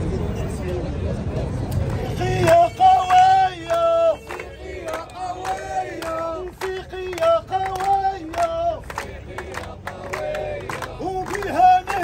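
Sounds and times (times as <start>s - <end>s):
rhythmic hand clapping: 1.8s - 12.0s
crowd chanting: 1.9s - 12.0s
man leading chant: 2.0s - 8.8s.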